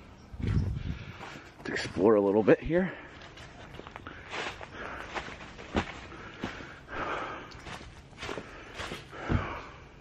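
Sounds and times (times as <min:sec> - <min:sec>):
footsteps on dry leaves: 0:03.0 - 0:09.3.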